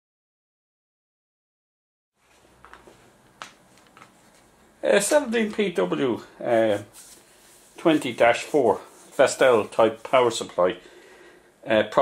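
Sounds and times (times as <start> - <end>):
man speaking: 4.8 - 7.0, 7.8 - 10.9, 11.6 - 12.0.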